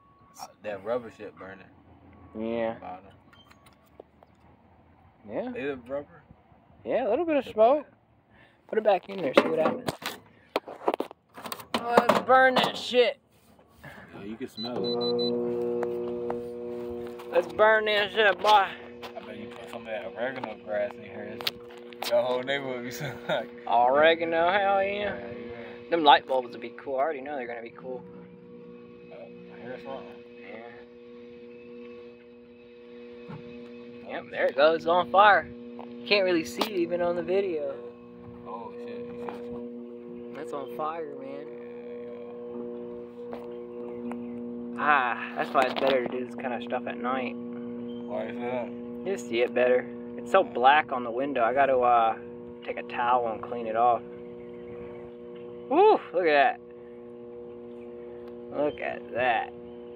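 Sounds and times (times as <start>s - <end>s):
faint low hum: 13.9s - 59.9s.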